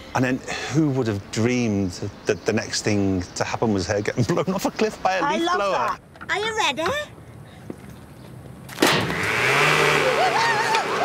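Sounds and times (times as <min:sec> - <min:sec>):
leaf blower blast: 0:08.8 - 0:11.0.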